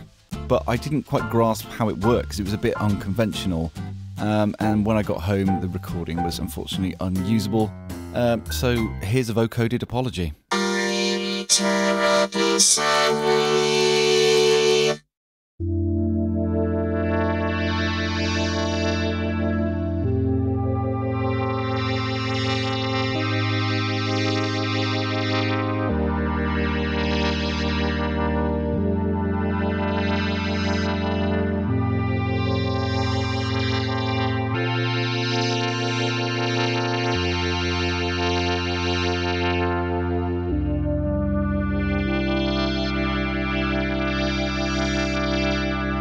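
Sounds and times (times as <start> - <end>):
synthesizer playing sustained chords: 10.5 - 15.0, 15.6 - 46.0.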